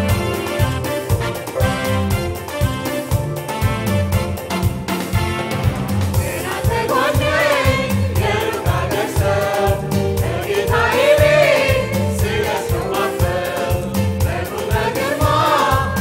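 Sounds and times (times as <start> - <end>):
drum kit beat: 0.0 - 16.0
keyboard: 0.0 - 16.0
choir singing gospel song: 6.1 - 16.0.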